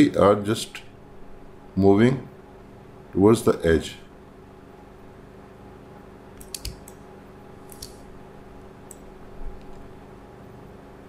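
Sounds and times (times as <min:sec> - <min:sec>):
faint low hum: 0:00.0 - 0:11.0
computer mouse clicks: 0:06.4 - 0:07.0, 0:07.7 - 0:08.0, 0:08.8 - 0:09.8.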